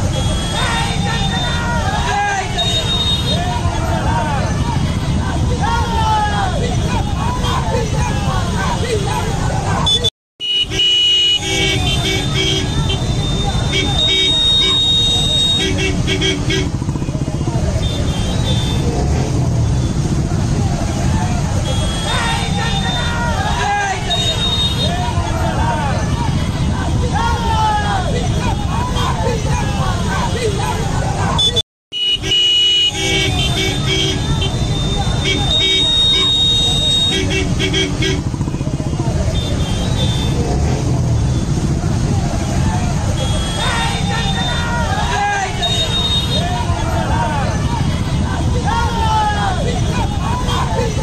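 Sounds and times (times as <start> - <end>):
crowd shouting: 0.0 - 10.1, 11.0 - 16.8, 17.4 - 31.6, 32.6 - 51.0
motorbike engines running: 0.0 - 51.0
vehicle horns honking: 2.4 - 3.5, 9.1 - 17.0, 17.8 - 20.1, 21.5 - 23.2, 24.0 - 25.0, 31.4 - 41.6, 43.0 - 48.8.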